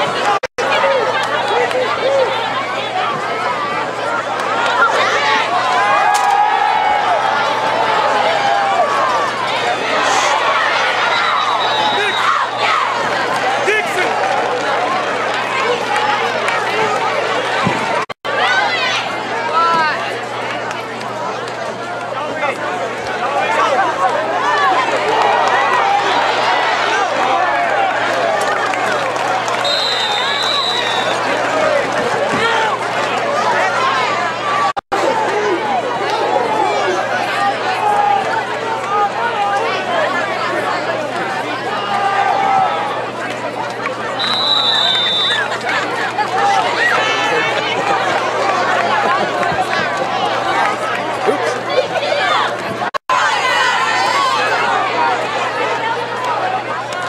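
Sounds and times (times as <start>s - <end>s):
crowd chatter: 0.0s - 57.0s
referee's whistle blast: 11.3s - 12.5s, 29.6s - 31.2s, 44.2s - 45.5s.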